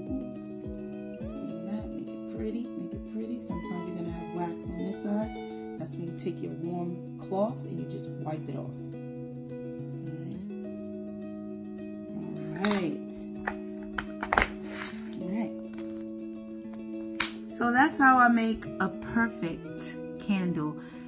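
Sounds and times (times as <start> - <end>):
guitar over held chords: 0.0 - 21.0
voice: 1.4 - 8.7, 12.1 - 13.3, 15.2 - 15.6, 17.5 - 20.8.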